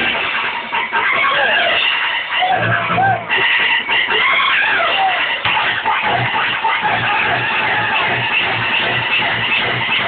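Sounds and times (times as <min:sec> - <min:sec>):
loud electronic club music: 0:00.0 - 0:10.0.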